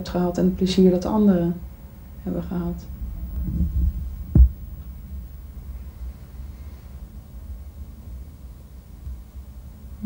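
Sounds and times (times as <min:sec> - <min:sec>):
steady low hum: 0:00.0 - 0:10.0
dull thump: 0:03.4 - 0:04.7.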